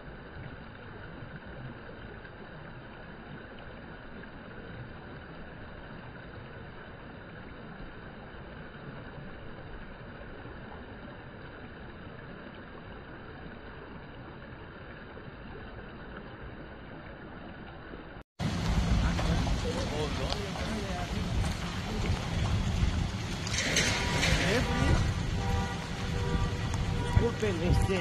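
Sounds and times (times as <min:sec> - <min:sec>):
outdoor background noise: 0:00.0 - 0:28.0.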